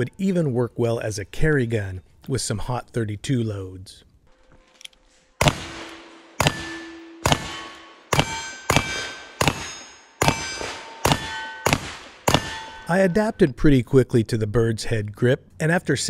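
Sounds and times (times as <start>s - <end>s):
revolver shots: 5.4s - 12.9s
steel plate target ringing: 5.4s - 13.5s.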